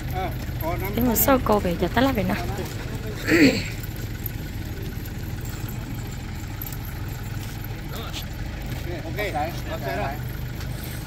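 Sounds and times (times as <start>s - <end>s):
engine idling hum: 0.0s - 11.0s
faint voices talking: 0.0s - 11.0s.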